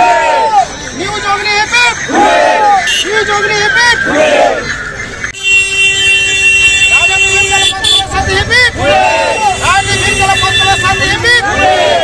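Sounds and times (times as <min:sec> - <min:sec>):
voices: 0:00.0 - 0:05.4, 0:06.4 - 0:12.0
steady horn blast: 0:05.4 - 0:08.4.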